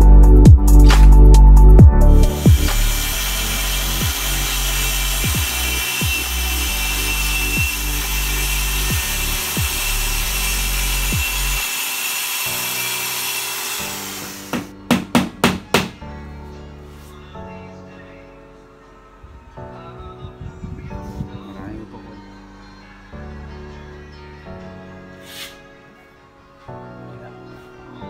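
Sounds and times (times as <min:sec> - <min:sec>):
power saw cutting plywood: 0:02.2 - 0:14.8
sharp knocks: 0:14.5 - 0:16.0.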